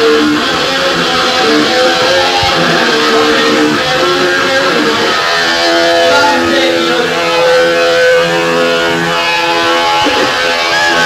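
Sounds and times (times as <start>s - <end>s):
distorted electric guitar: 0.0s - 11.0s
punk band playing live: 0.0s - 11.0s.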